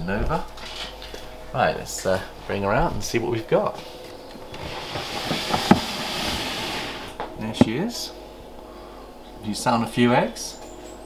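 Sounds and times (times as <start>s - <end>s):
plastic tub scraping on plastic: 4.5s - 7.2s.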